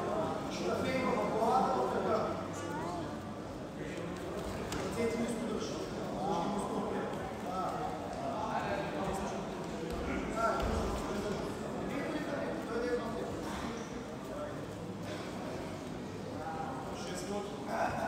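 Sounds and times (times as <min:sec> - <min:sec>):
crowd murmur in hall: 0:00.0 - 0:18.0.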